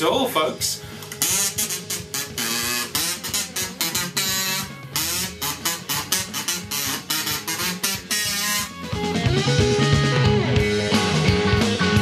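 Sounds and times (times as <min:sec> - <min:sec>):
backing music track: 0:00.0 - 0:12.0
kazoo playing a tune: 0:01.0 - 0:10.2.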